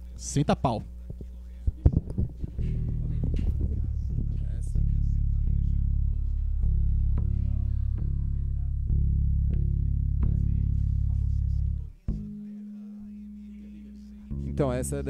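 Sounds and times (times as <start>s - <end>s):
steady low hum: 0.0s - 15.0s
heavy electric guitar and bass: 1.8s - 12.5s, 14.2s - 15.0s.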